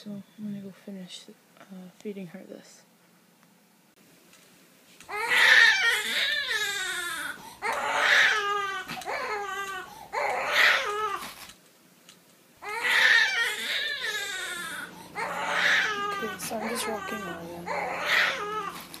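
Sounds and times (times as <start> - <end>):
infant crying: 5.1 - 11.4, 12.6 - 18.9.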